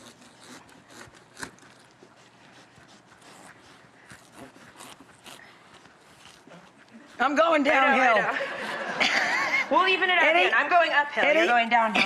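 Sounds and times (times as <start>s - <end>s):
knife cutting watermelon rind: 0.0s - 7.3s.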